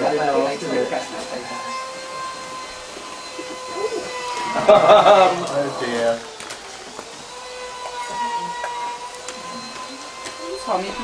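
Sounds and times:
voice: 0.0 - 1.8, 3.4 - 6.2, 7.9 - 11.0
steady whistle-like tone: 0.0 - 11.0.

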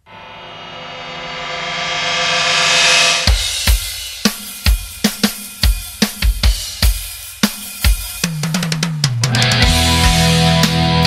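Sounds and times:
rock drum kit beat: 3.2 - 11.0
bass guitar: 9.2 - 11.0.

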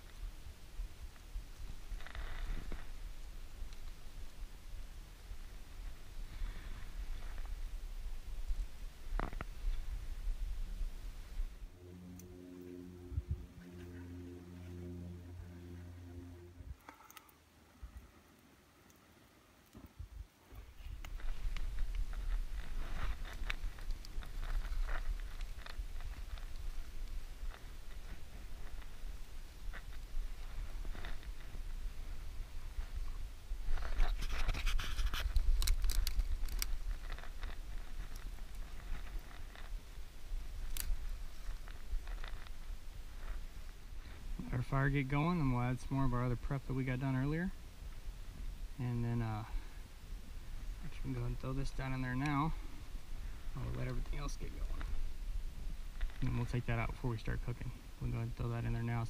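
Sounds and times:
kindling crackling and snapping: 0.0 - 59.0
low steady hum: 0.0 - 59.0
sticks being handled: 33.7 - 39.9.

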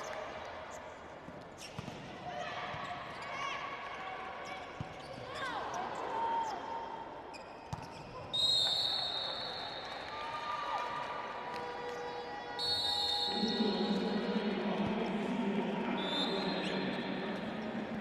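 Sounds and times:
sneakers squeaking on floor: 7.3 - 9.3
referee's whistle blast: 12.6 - 13.6.

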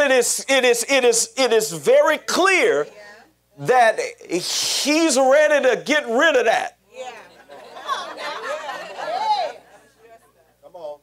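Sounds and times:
preacher speaking into microphone: 0.0 - 3.0, 3.6 - 6.8
congregation calling out responses: 6.9 - 10.3.

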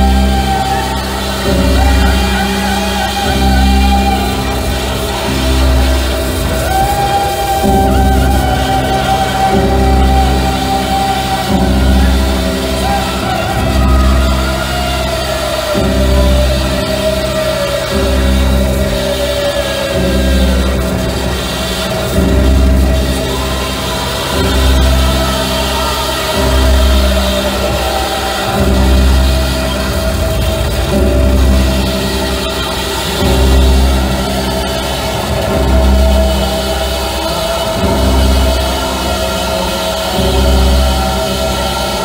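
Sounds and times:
deep bass swell: 0.0 - 42.0
droning accompaniment: 0.0 - 42.0.

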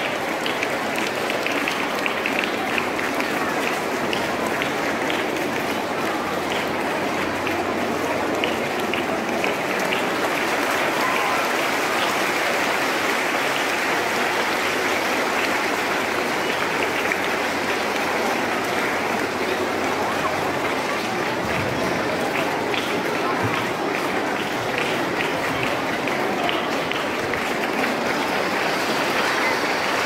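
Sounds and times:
audience applauding: 0.0 - 30.0.

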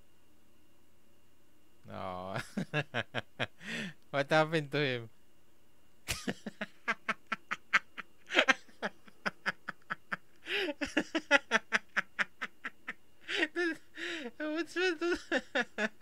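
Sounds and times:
man laughing hard: 2.4 - 3.9, 6.1 - 16.0.

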